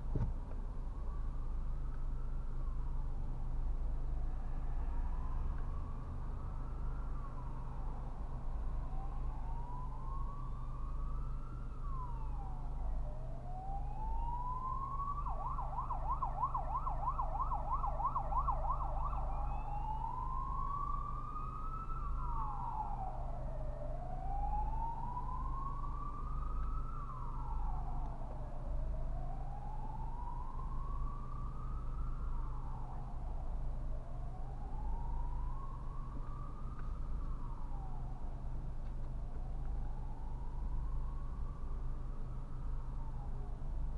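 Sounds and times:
low drone inside car: 0:00.0 - 0:43.9
emergency siren wailing: 0:00.9 - 0:43.9.

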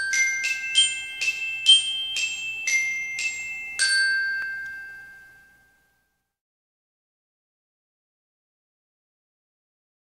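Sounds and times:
chime-like jingle note ringing: 0:00.0 - 0:06.2.

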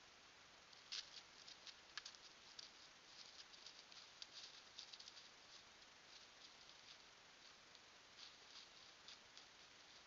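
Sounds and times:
steady hiss: 0:00.0 - 0:10.0
hooves stepping through dry leaves: 0:00.8 - 0:10.0.

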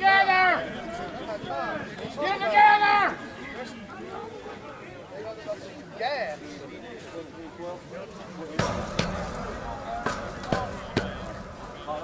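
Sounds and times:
faint voices: 0:00.0 - 0:12.0
sharp knocks: 0:08.6 - 0:12.0.

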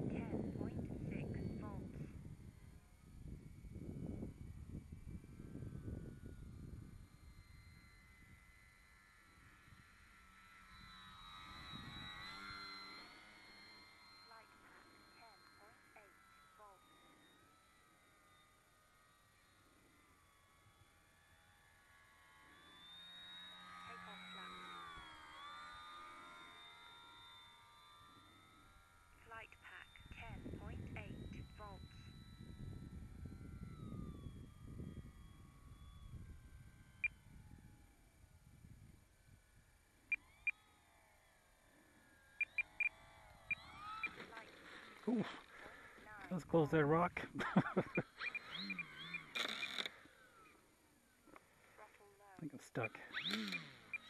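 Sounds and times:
electric model plane motor whine: 0:00.0 - 0:54.0.

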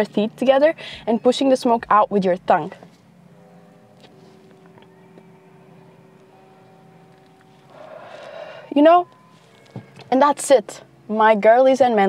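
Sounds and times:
faint steady hum of held tones: 0:00.0 - 0:12.0.

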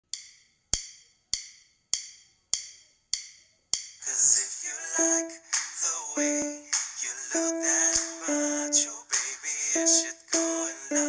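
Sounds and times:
metronome clicks: 0:05.0 - 0:05.4, 0:06.2 - 0:06.7, 0:07.3 - 0:08.9, 0:09.8 - 0:11.0.

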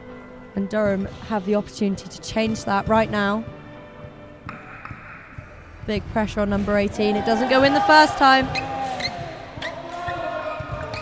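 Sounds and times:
basketball bouncing on floor: 0:08.4 - 0:11.0.

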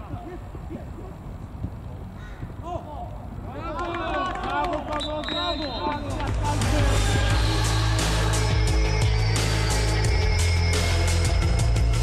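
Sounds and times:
men shouting and cheering: 0:02.6 - 0:09.8.

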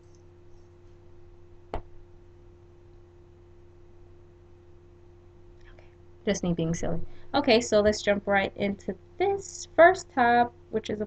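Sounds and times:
low electrical hum: 0:00.0 - 0:11.0.

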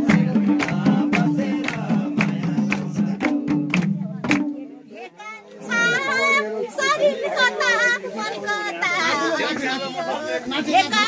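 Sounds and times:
other voices: 0:00.0 - 0:11.0.

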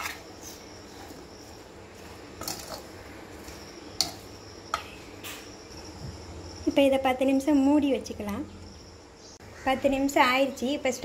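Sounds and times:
metal spoon scraping steel bowl: 0:00.0 - 0:01.2
crickets chirring: 0:00.0 - 0:11.0.

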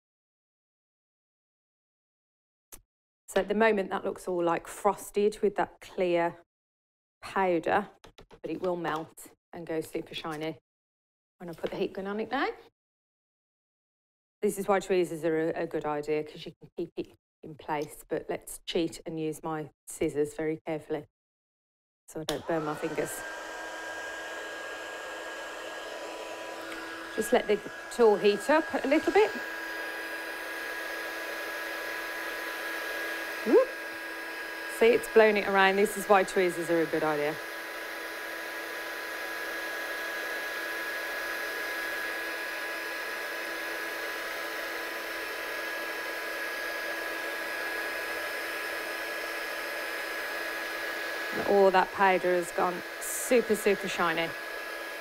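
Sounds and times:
heat gun blowing air with whine: 0:22.3 - 0:55.0.

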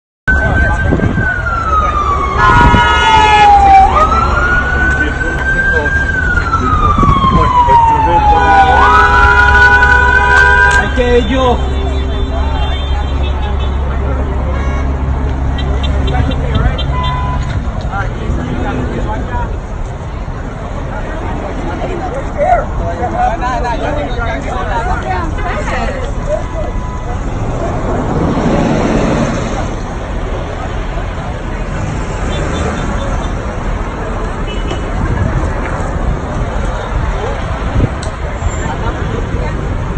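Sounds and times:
emergency siren wailing: 0:00.3 - 0:13.9, 0:23.8 - 0:32.1
low street rumble: 0:00.3 - 0:39.9
people talking: 0:03.6 - 0:09.2, 0:10.6 - 0:14.9, 0:15.6 - 0:39.9.

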